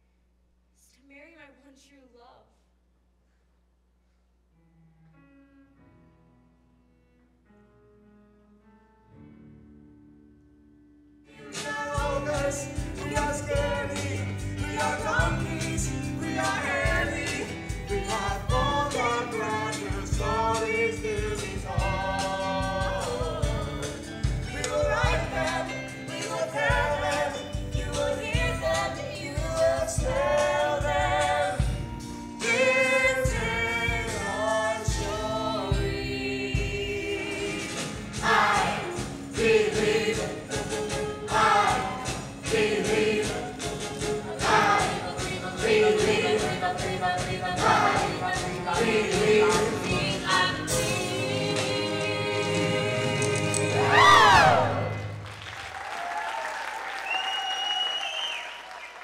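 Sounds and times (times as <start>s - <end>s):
cast singing musical number: 11.3s - 55.1s
audience applauding: 53.2s - 59.0s
high cheer: 53.8s - 59.0s.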